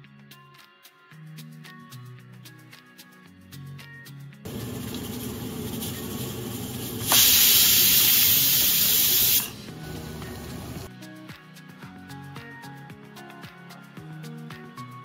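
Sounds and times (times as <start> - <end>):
pressure cooker steam hissing: 4.5 - 10.9.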